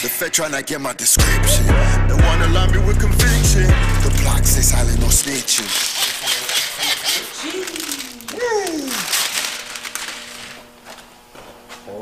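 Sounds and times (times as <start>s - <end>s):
film crinkling and rustling: 5.1s - 11.9s.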